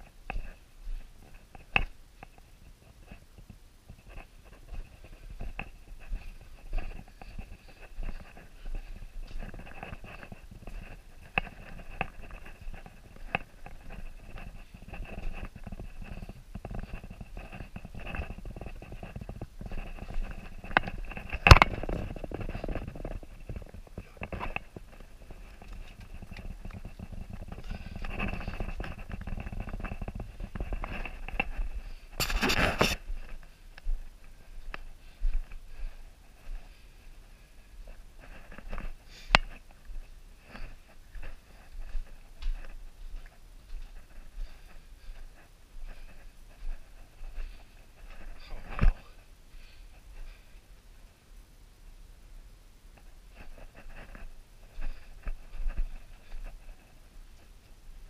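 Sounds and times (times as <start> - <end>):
clothing and gear rustling: 3.9 - 50.7
footsteps on rocky floor: 4.5 - 36.7.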